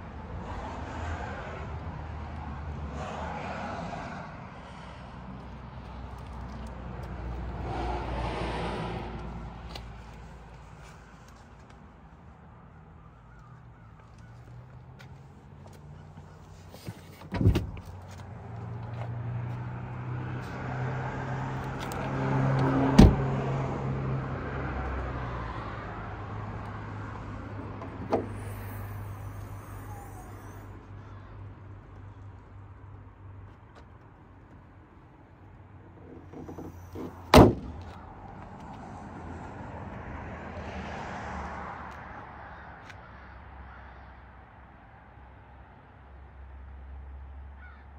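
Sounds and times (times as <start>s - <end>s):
vehicle engine hum: 0.0s - 44.0s
car door slamming: 17.2s - 17.8s, 22.9s - 23.3s, 27.8s - 28.7s, 36.2s - 38.0s
hood release lever clunk: 36.2s - 37.9s.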